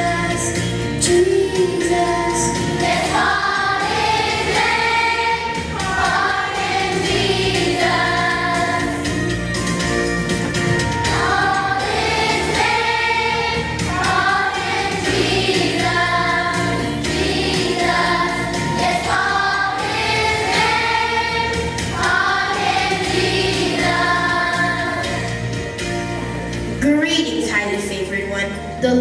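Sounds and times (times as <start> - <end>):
children's choir singing: 0.0 - 9.4, 10.8 - 25.6
instrumental accompaniment: 0.0 - 29.0.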